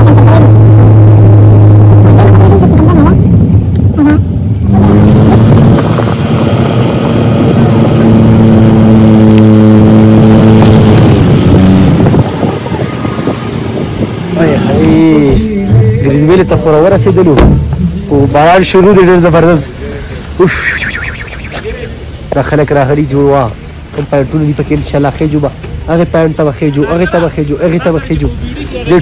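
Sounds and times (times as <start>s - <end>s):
car engine droning: 0.0s - 29.0s.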